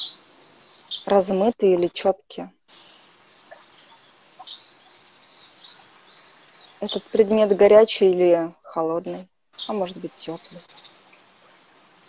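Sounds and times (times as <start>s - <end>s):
small bird chirping: 0.0s - 7.5s, 9.1s - 11.0s
faint steady hiss: 0.0s - 12.0s.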